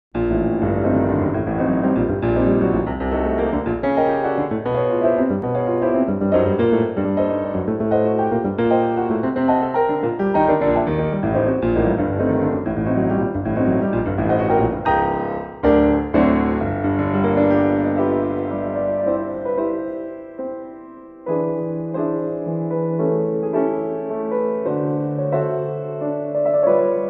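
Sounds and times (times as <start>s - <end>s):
piano music: 0.2s - 27.0s.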